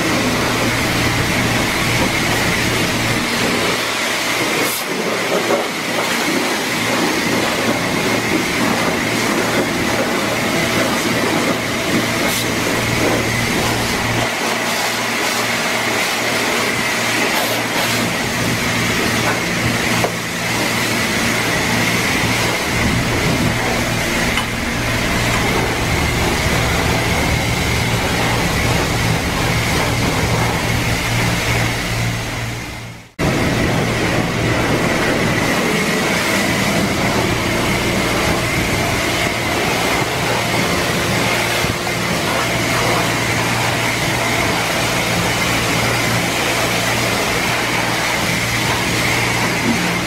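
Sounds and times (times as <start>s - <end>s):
high whine: 0.0s - 4.6s, 6.9s - 50.0s
pressure washer spraying water: 7.0s - 32.7s, 33.3s - 50.0s
low hum: 21.1s - 40.2s.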